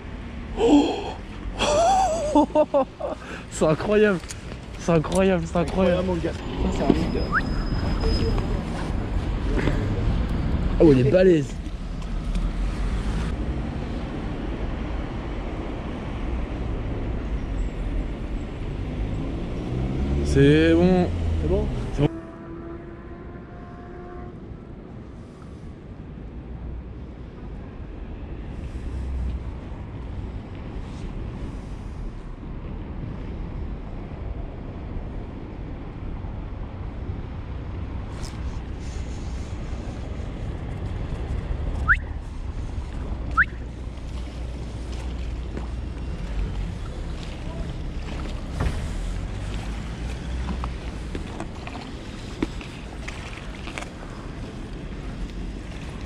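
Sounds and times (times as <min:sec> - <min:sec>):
low hum of traffic: 0:00.0 - 0:56.0.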